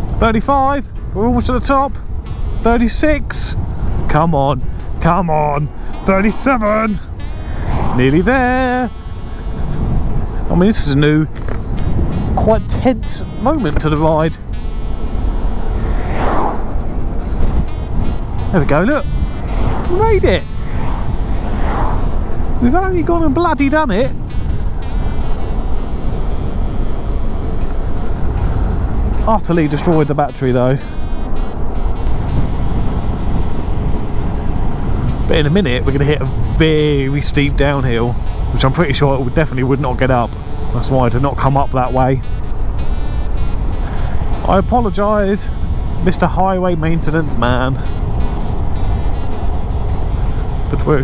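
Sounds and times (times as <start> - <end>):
background music: 0.0 - 51.0
electric scooter road noise: 0.0 - 51.0
van passing by: 0.0 - 51.0
wind rumble on microphone: 0.0 - 51.0.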